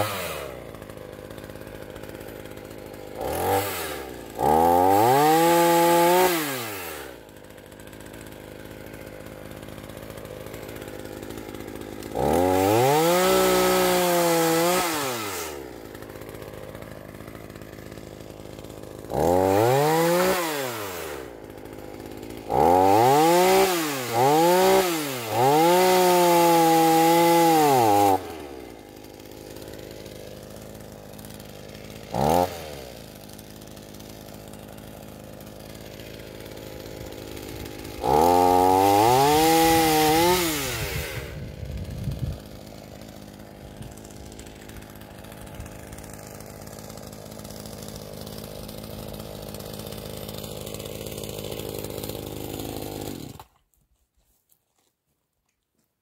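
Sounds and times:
chainsaw revving and idling: 0.0s - 53.8s.

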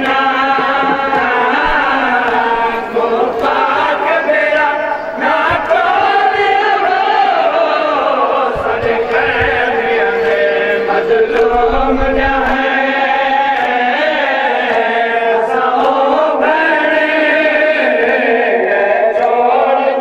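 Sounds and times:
male voices chanting a lament: 0.0s - 20.0s.

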